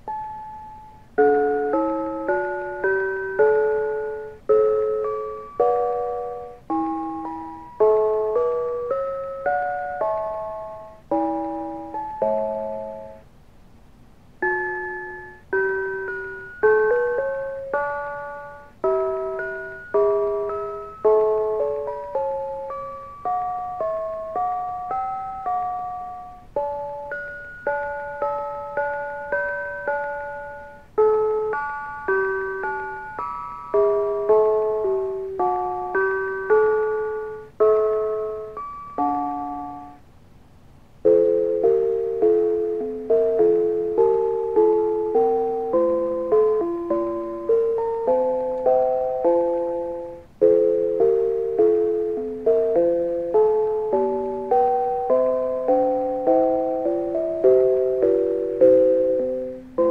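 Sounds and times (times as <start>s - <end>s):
automated brass bells playing: 14.4s - 40.0s.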